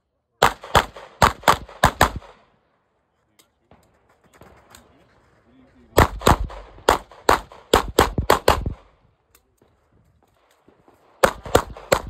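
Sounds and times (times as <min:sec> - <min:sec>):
pistol shots: 0:00.4 - 0:02.4, 0:06.0 - 0:09.0, 0:10.5 - 0:12.0.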